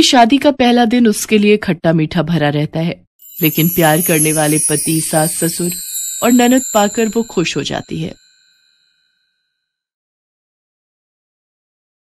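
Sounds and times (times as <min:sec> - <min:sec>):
bell-like chime: 0:03.2 - 0:09.6
person speaking: 0:03.4 - 0:08.2.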